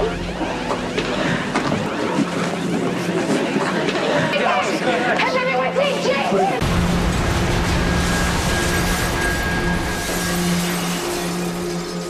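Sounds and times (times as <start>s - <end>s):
loud steady rushing noise: 6.6s - 12.0s.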